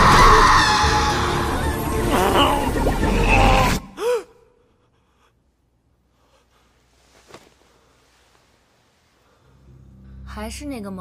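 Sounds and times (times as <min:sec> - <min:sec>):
dramatic film soundtrack: 0:00.0 - 0:04.5.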